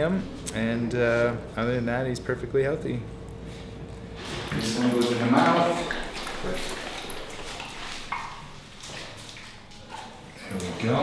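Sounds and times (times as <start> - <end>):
dog licking rubber mat: 4.5 - 10.2.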